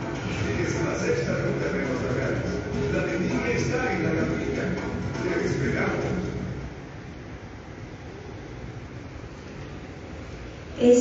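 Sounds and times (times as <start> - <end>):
music: 0.0 - 6.8
room background hiss: 0.0 - 11.0.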